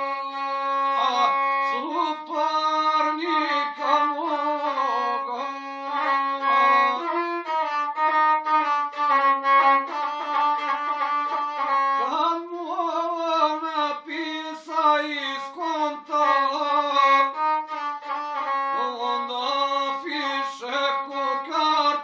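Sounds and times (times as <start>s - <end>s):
bowed single-string fiddle: 0.0s - 22.0s.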